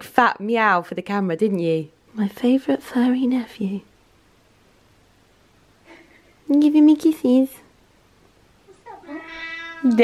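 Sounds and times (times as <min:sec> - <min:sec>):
cat meowing: 0:08.7 - 0:10.0.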